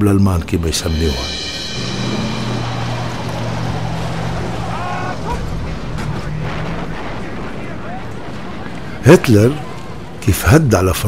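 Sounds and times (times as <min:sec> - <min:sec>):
higher wavering tones: 0:00.7 - 0:06.8
heavy vehicle engine running: 0:01.3 - 0:08.8.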